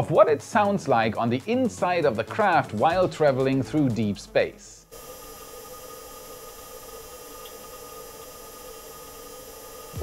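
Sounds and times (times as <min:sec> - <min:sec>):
faint hiss: 0:04.4 - 0:10.0
pump whirring: 0:09.5 - 0:10.0.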